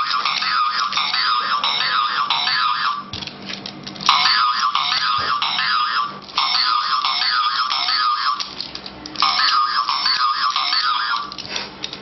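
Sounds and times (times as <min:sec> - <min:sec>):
electronic warbling alarm tone: 0:00.0 - 0:03.1, 0:04.1 - 0:08.4, 0:09.2 - 0:11.3.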